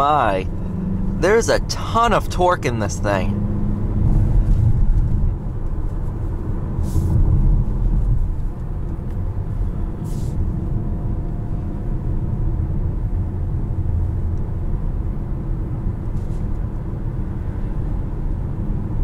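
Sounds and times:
car engine rumble: 0:00.0 - 0:19.0.

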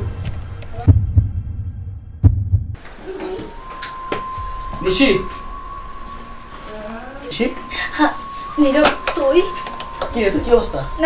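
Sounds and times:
heartbeat thumps: 0:00.0 - 0:02.8.

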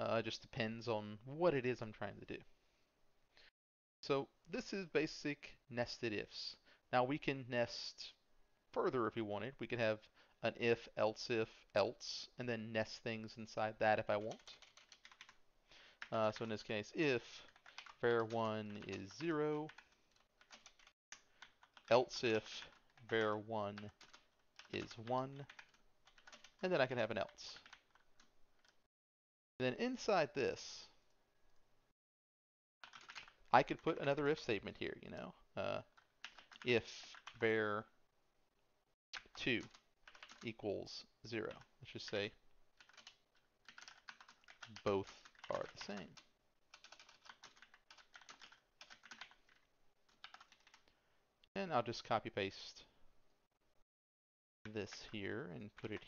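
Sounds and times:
keyboard typing: 0:14.1 - 0:15.4, 0:16.0 - 0:28.8, 0:32.8 - 0:33.4, 0:35.8 - 0:37.4, 0:39.2 - 0:40.5, 0:42.8 - 0:50.9.

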